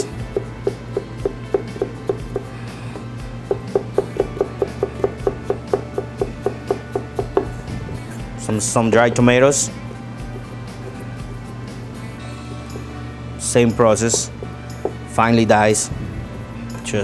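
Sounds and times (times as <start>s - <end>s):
background music: 0.0s - 17.0s
knife chopping on cutting board: 0.3s - 7.5s.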